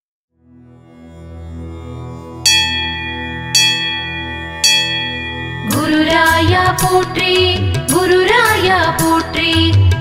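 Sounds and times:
bell ringing: 2.5s - 6.8s.

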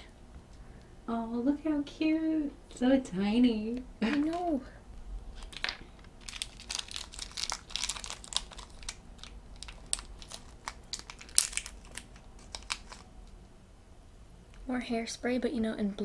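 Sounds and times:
thin plastic crinkling and clicking: 3.7s - 4.7s, 5.3s - 13.5s.

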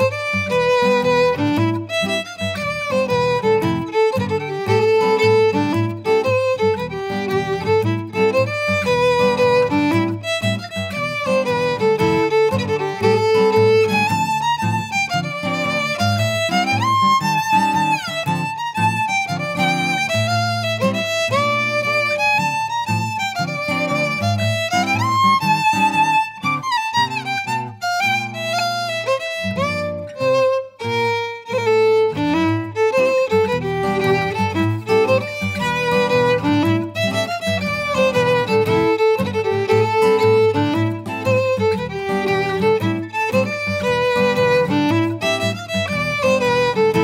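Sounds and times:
fiddle playing a tune: 0.0s - 47.0s.

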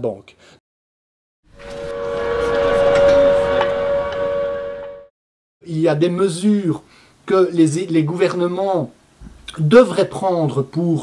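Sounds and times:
steady whistle-like tone: 1.5s - 5.1s.

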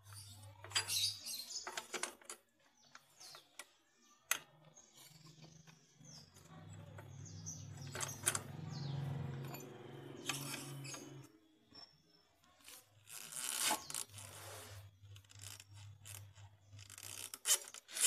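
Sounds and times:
metal tools clinking: 7.0s - 12.0s.

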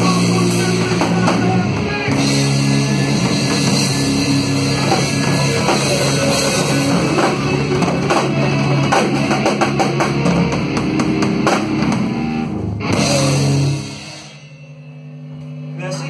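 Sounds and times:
rock band playing live: 0.0s - 15.8s
drum kit with cymbals: 0.0s - 16.0s
electric bass: 0.0s - 16.0s.

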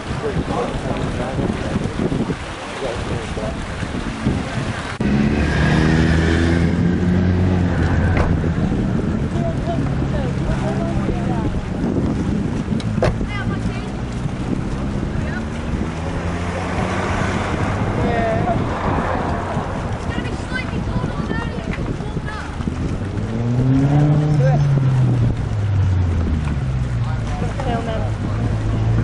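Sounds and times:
engine running steadily: 0.0s - 29.0s
wind noise: 0.0s - 29.0s
scattered voices: 13.1s - 23.2s.

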